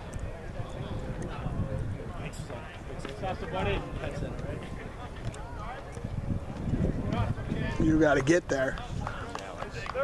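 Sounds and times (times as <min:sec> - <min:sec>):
people talking and calling out: 0:00.0 - 0:10.0.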